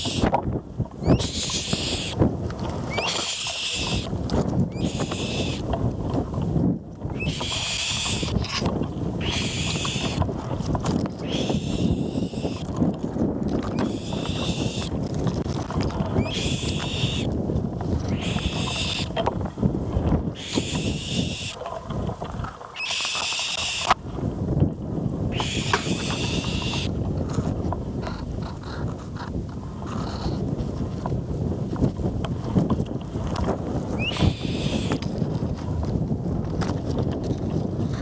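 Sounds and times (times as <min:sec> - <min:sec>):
eaglets calling: 0:00.0 - 0:00.3, 0:01.0 - 0:02.2, 0:02.9 - 0:04.1, 0:04.7 - 0:05.7, 0:07.1 - 0:08.6, 0:09.2 - 0:10.3, 0:11.2 - 0:12.7, 0:13.7 - 0:14.9, 0:16.2 - 0:17.3, 0:18.1 - 0:19.2, 0:20.3 - 0:21.6, 0:22.7 - 0:24.0, 0:25.3 - 0:26.9, 0:34.0 - 0:35.0
microphone handling noise: 0:00.0 - 0:38.0
wind rumble: 0:00.0 - 0:38.0.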